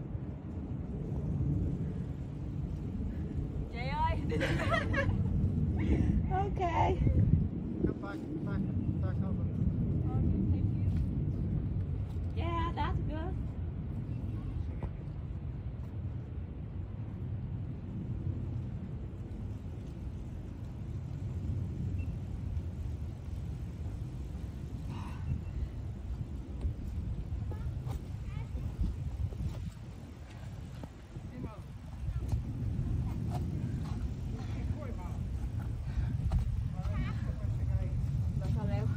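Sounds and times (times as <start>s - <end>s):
low outdoor rumble: 0.0s - 38.9s.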